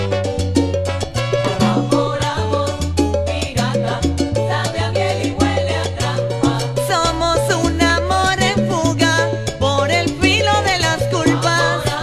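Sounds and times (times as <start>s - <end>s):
salsa band music: 0.0s - 12.0s.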